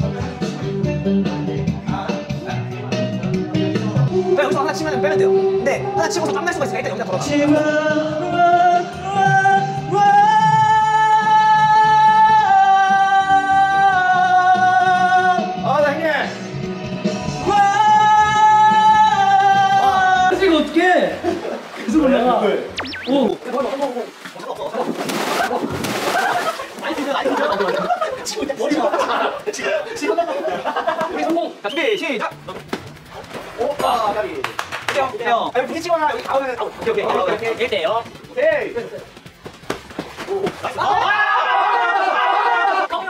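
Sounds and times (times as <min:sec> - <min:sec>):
instrumental backing track: 0:00.0 - 0:09.2
music: 0:00.0 - 0:23.0, 0:29.0 - 0:41.2
man singing a long high note: 0:07.2 - 0:15.5.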